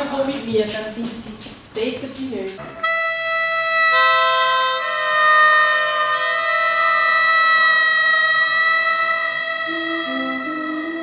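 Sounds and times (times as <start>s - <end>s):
harmonica chords: 2.7s - 11.0s.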